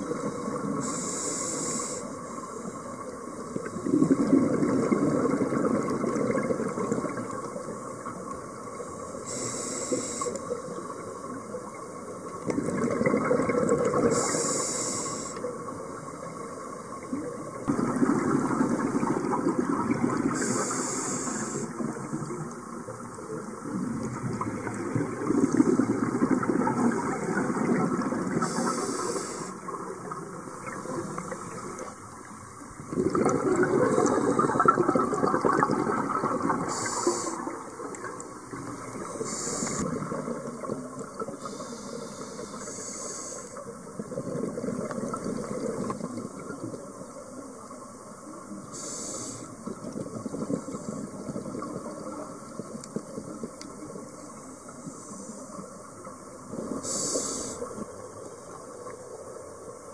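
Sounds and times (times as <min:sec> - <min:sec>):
regulator hiss on inhalation: 0:00.2 - 0:02.7, 0:09.1 - 0:10.8, 0:14.0 - 0:15.5, 0:20.3 - 0:22.2, 0:28.4 - 0:29.7, 0:36.6 - 0:37.6, 0:38.9 - 0:39.9, 0:41.4 - 0:43.6, 0:48.6 - 0:49.7, 0:54.6 - 0:55.6, 0:56.6 - 0:57.8
bubbles rushing on exhalation: 0:03.8 - 0:07.4, 0:12.4 - 0:14.1, 0:17.7 - 0:20.5, 0:23.6 - 0:28.6, 0:32.8 - 0:39.1, 0:44.0 - 0:46.7.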